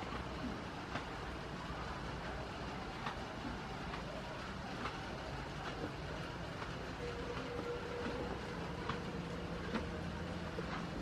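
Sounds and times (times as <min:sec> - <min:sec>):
rain on a roof: 0:00.0 - 0:11.0.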